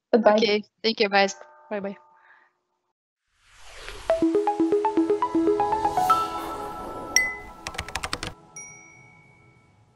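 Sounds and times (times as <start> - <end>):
bright chime: 8.5 - 9.9.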